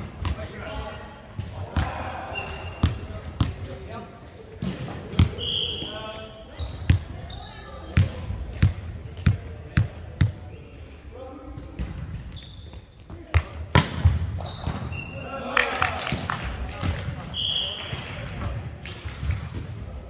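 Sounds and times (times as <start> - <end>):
players' voices: 0.0 - 20.0.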